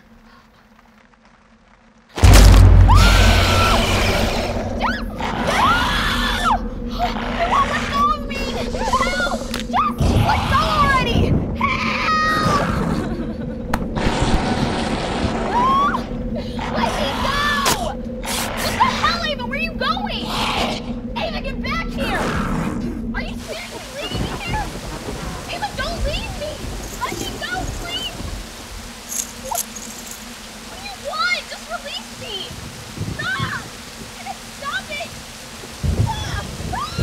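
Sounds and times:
rushing noise: 2.2 - 9.8
steady low drone: 2.2 - 12.0
young women screaming: 2.8 - 11.0, 15.5 - 16.2, 36.0 - 37.0.

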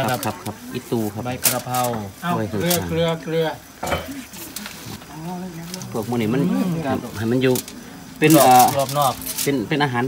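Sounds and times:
aluminium foil crackling: 0.0 - 10.0.

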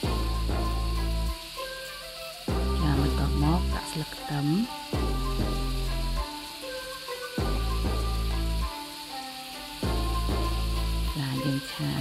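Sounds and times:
background music: 0.0 - 12.0
meat and tofu sizzling in oil: 0.0 - 12.0.

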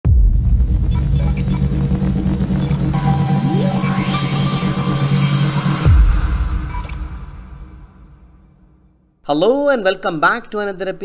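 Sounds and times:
deep bass rumble: 0.0 - 8.6.

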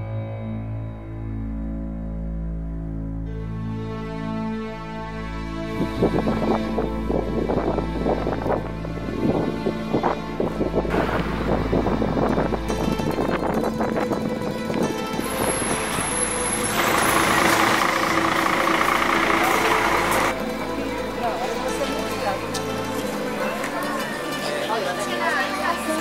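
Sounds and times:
noisy background: 5.5 - 26.0
plucked mandolin music: 10.9 - 26.0.

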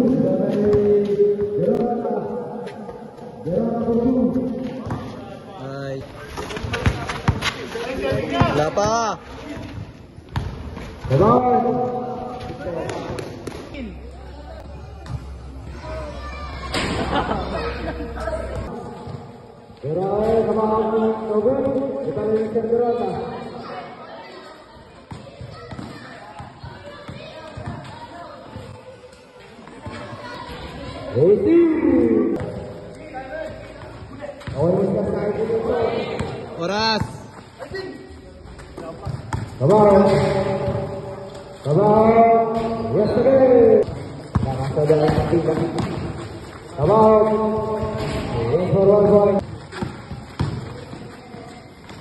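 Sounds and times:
basketball bouncing on concrete: 4.8 - 5.1, 6.5 - 9.0, 25.1 - 28.0, 38.8 - 41.4, 43.8 - 46.3, 46.9 - 48.3, 48.9 - 52.0.

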